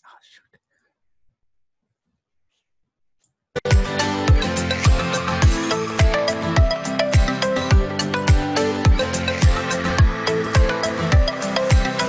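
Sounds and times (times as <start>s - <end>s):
soft voice: 0.0s - 0.9s.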